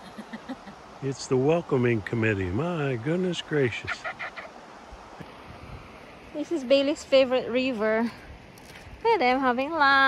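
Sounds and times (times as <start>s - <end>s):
low outdoor background: 0.0s - 10.0s
waterfowl calls: 3.7s - 4.7s.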